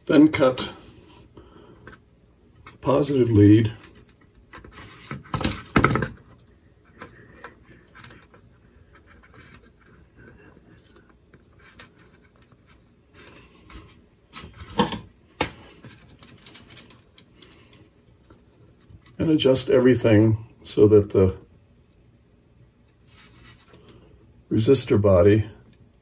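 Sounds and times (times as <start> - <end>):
faint clicks and rustles: 0.9 - 19.2.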